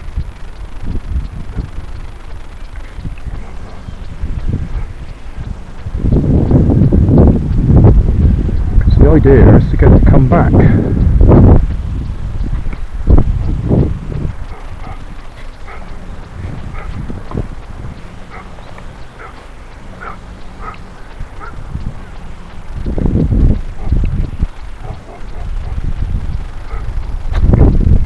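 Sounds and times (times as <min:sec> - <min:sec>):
steady low rumble: 0:00.0 - 0:28.0
wind buffeting microphone: 0:00.0 - 0:28.0.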